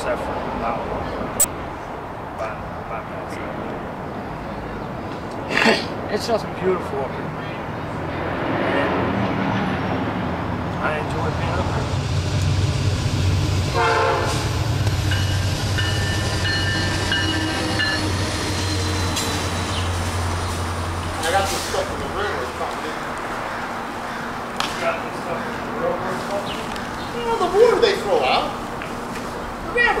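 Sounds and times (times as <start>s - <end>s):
freight train rumbling past: 8.0s - 30.0s
train horn chord: 13.7s - 18.0s.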